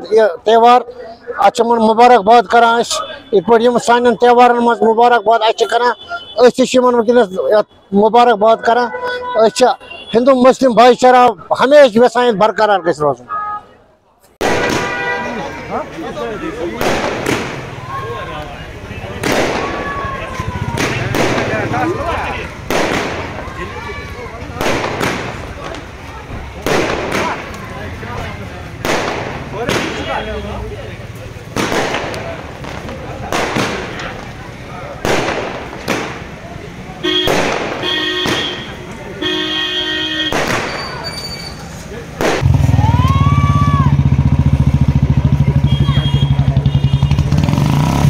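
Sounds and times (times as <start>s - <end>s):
sharp bang: 14.4s - 15.3s
fireworks bangs: 14.4s - 43.7s
short whistle: 40.7s - 41.7s, 45.6s - 46.9s
vehicle engine throbbing: 42.4s - 48.0s.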